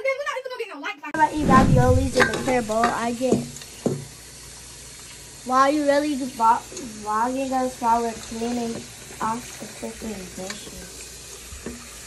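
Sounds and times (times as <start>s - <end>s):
children's voices: 0.0s - 3.5s, 5.5s - 10.9s
tap water running into bowls: 2.2s - 12.0s.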